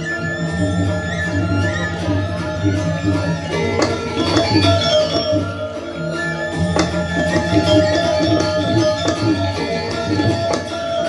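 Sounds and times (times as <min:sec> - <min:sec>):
ringing bronze metallophones: 0:00.0 - 0:11.0
drums beating: 0:03.5 - 0:05.6, 0:06.6 - 0:11.0.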